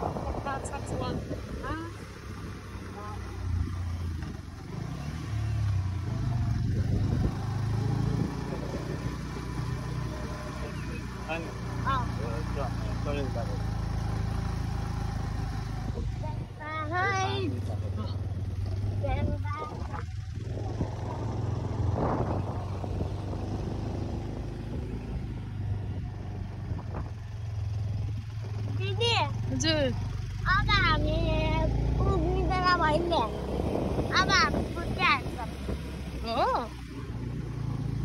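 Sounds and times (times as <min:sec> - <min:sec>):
wind rush on microphone: 0:00.0 - 0:04.9, 0:06.3 - 0:09.2, 0:19.0 - 0:27.2, 0:32.0 - 0:36.6
motorbike engine running: 0:00.0 - 0:38.0.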